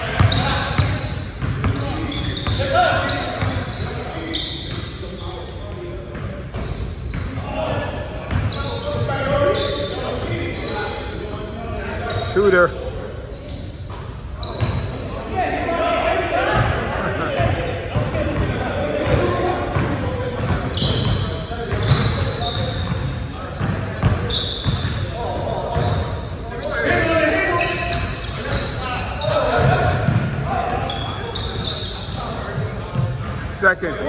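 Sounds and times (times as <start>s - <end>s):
players calling out: 0.0s - 5.6s, 6.6s - 34.0s.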